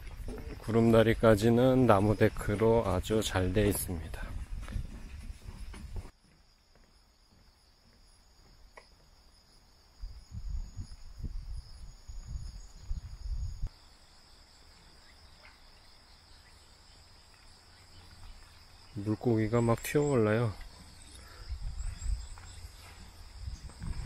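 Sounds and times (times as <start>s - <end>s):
insects droning: 0.0s - 24.0s.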